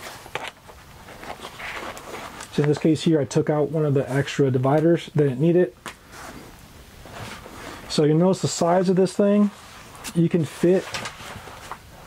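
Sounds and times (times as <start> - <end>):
fabric rustling: 0.0 - 3.0, 6.0 - 8.0, 8.6 - 12.0.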